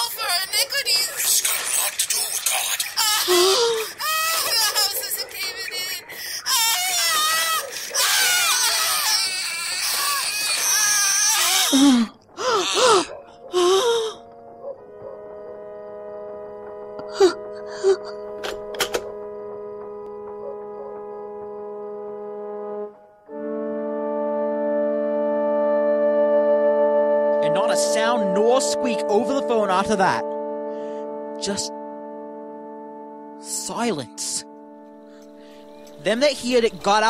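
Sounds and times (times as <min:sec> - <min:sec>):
people screaming and wailing: 0:02.9 - 0:11.7
held musical chord: 0:14.2 - 0:37.0.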